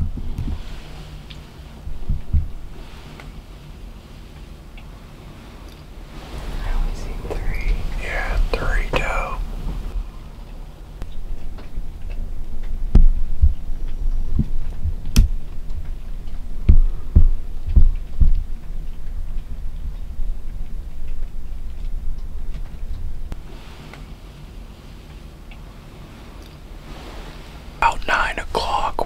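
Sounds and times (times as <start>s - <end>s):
dull low thumps: 0.0s - 28.9s
low steady rumble: 0.0s - 29.0s
person whispering: 6.3s - 9.6s, 27.8s - 29.0s.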